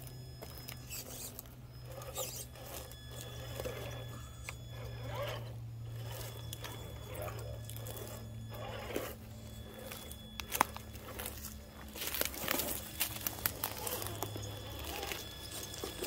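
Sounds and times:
tires scraping on rock: 0:00.0 - 0:16.0
toy car motor whirring: 0:00.0 - 0:16.0.

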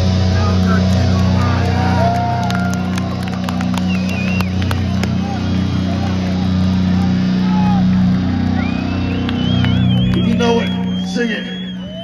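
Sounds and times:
metal band guitar and bass drone: 0:00.0 - 0:12.0
crowd shouting: 0:00.2 - 0:12.0
sharp claps: 0:00.8 - 0:05.5, 0:09.0 - 0:11.1.

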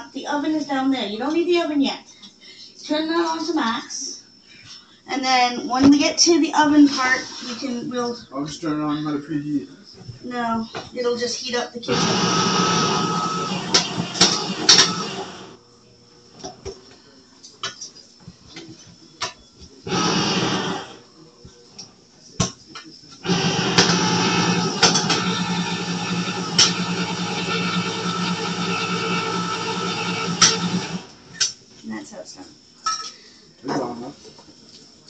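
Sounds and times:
electric can opener motor humming: 0:11.9 - 0:15.6, 0:19.9 - 0:21.0, 0:23.2 - 0:31.3.

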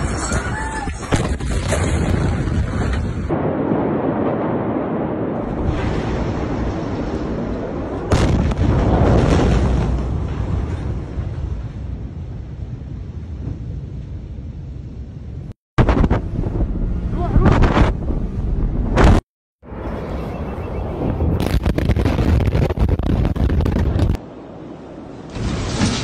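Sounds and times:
loud bangs and rumbling: 0:00.0 - 0:19.8, 0:21.1 - 0:24.3
explosion boom: 0:01.0 - 0:12.4, 0:15.8 - 0:20.0, 0:20.9 - 0:24.2
heavy rumble: 0:01.1 - 0:20.1, 0:20.9 - 0:26.0.

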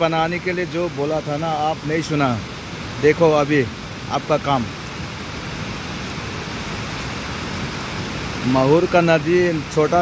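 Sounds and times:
floodwater rushing over rocks: 0:00.0 - 0:10.0.

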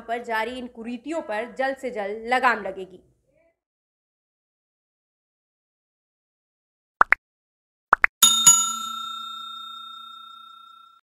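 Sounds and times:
bell chime ringing: 0:08.2 - 0:11.0.

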